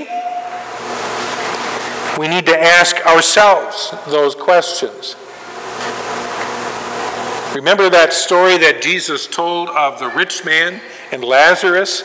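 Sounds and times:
room background hiss: 0:00.0 - 0:12.0.

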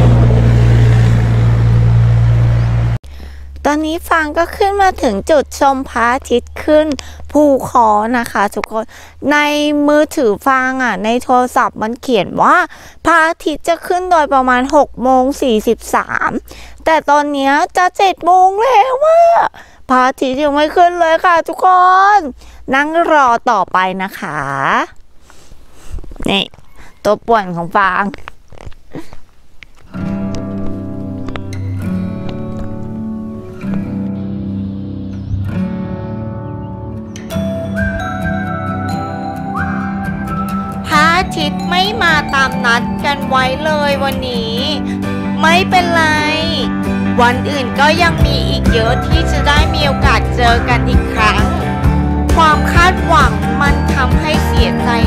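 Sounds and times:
vehicle engine idling: 0:00.0 - 0:04.8
quiet outdoor background: 0:00.0 - 0:55.0
woman speaking: 0:03.6 - 0:25.0, 0:26.2 - 0:28.2, 0:40.9 - 0:51.7, 0:52.3 - 0:55.0.

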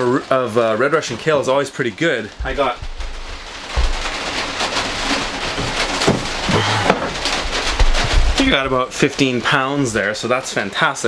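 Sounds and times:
heavy rain on metal: 0:00.0 - 0:11.0
plastic bins clattering: 0:02.3 - 0:10.1.

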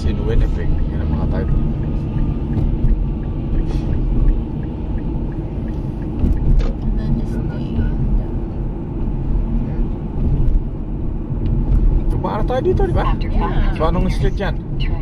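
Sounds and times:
car engine and tyre rumble: 0:00.0 - 0:15.0.

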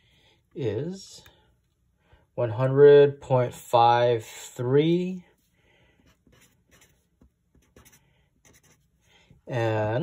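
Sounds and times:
pen scratching on paper: 0:06.0 - 0:08.9.

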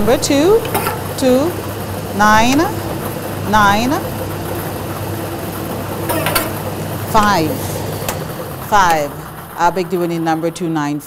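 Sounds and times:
lottery machine hum and hiss: 0:00.0 - 0:11.0.

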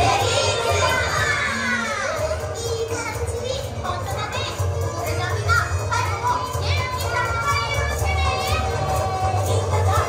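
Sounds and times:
children calling out and chattering: 0:00.0 - 0:10.0
upbeat stage-show music: 0:00.0 - 0:10.0.

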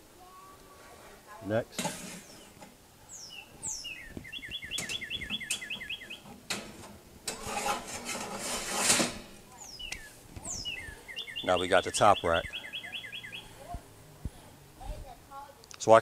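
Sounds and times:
metal grate scraping and clanking: 0:01.7 - 0:02.7, 0:04.8 - 0:09.5
bird chirping: 0:02.1 - 0:06.4, 0:09.5 - 0:13.7.

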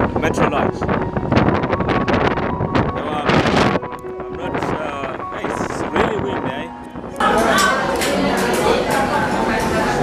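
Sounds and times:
wind buffeting microphone: 0:00.0 - 0:07.2
indistinct background voices: 0:05.2 - 0:10.0.

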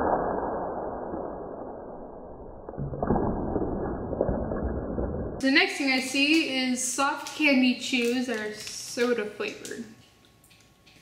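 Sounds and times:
plastic snack bag tearing and crinkling: 0:07.2 - 0:09.8.

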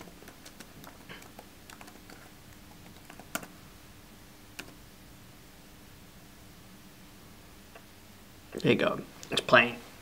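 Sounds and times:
computer keyboard typing: 0:00.0 - 0:03.6, 0:04.6 - 0:04.8.

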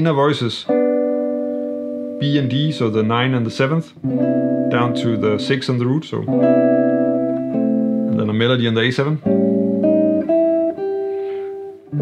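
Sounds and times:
jazz guitar melody: 0:00.0 - 0:12.0
guitar chord strummed: 0:00.6 - 0:12.0.

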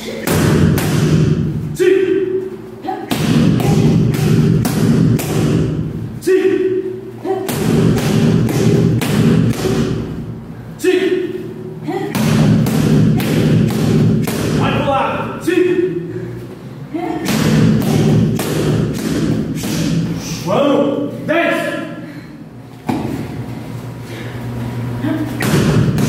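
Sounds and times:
person shouting: 0:06.2 - 0:07.5, 0:10.8 - 0:12.2
kicks thudding on pads: 0:25.4 - 0:26.0.

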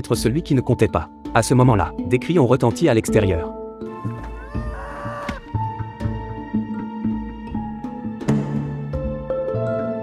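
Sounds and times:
background music: 0:00.0 - 0:10.0
shrill drawn-out cry: 0:03.9 - 0:05.5.

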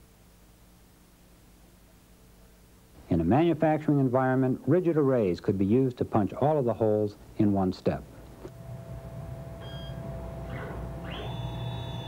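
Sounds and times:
steady machine hum: 0:06.5 - 0:12.0
electronic beeps: 0:09.6 - 0:12.0.

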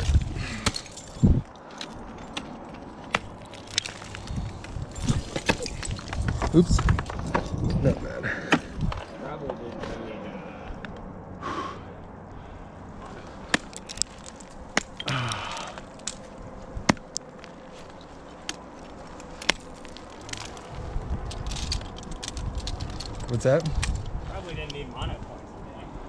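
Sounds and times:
ice axes striking ice: 0:00.0 - 0:07.7, 0:13.4 - 0:20.7.

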